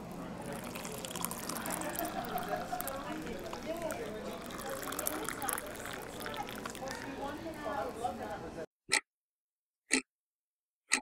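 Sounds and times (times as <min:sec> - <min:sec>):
indistinct crowd chatter: 0:00.0 - 0:08.7.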